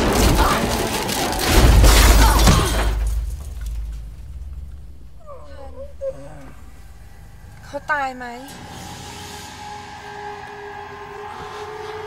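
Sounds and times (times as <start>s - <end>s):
low steady rumble: 0.0s - 10.0s
person moaning: 5.2s - 7.9s.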